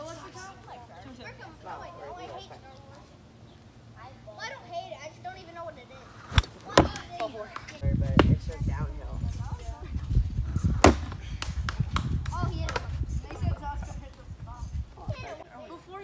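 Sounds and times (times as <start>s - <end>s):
sharp knocks of wiffle ball: 6.3s - 7.3s, 10.8s - 11.2s.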